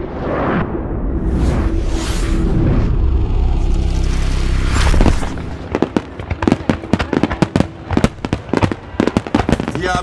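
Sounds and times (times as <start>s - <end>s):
fireworks cracking and banging: 5.0s - 10.0s.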